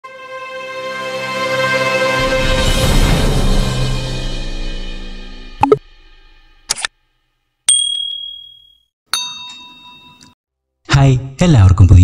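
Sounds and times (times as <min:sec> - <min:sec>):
fuller ringing chime: 0:07.7 - 0:10.4
high ding: 0:07.7 - 0:10.4.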